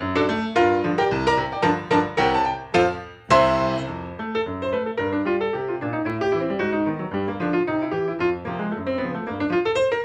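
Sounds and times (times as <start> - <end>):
solo grand piano playing jazz: 0.0 - 10.0.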